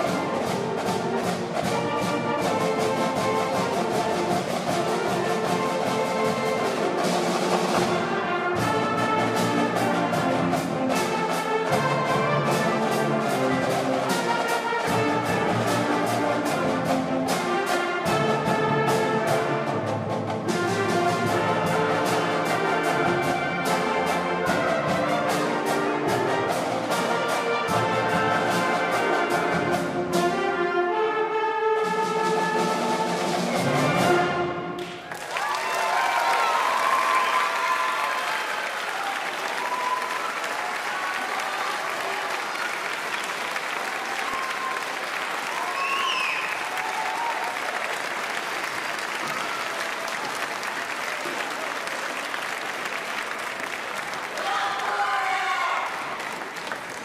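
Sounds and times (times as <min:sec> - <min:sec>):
concert band playing: 0:00.0 - 0:54.6
audience applauding: 0:34.8 - 0:57.0.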